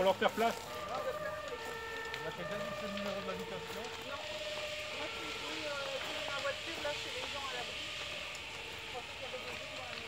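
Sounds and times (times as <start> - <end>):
fire hissing: 0.0 - 10.0.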